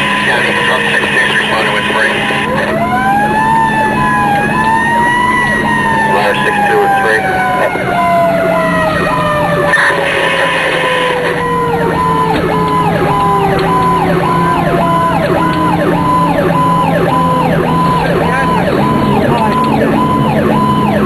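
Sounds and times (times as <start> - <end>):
fire truck siren wailing: 0.0 - 21.0
second siren tone switching: 2.2 - 21.0.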